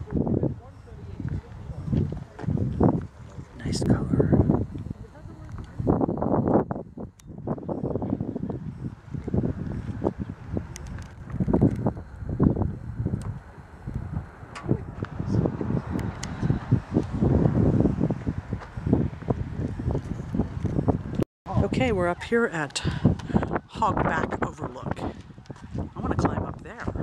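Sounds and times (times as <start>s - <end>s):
wind buffeting microphone: 0.0s - 27.0s.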